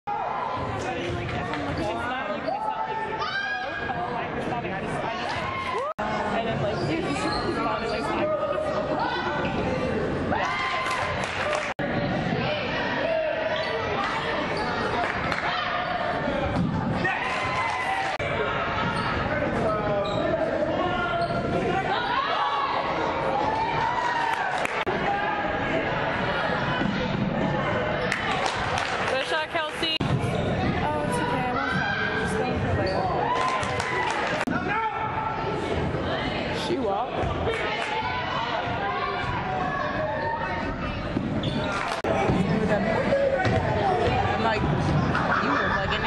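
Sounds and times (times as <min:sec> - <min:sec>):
voices of players and spectators: 0:00.0 - 0:46.0.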